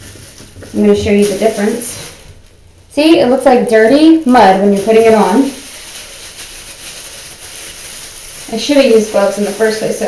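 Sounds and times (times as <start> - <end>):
gloved hand rubbing lotion on skin: 4.5 - 10.0.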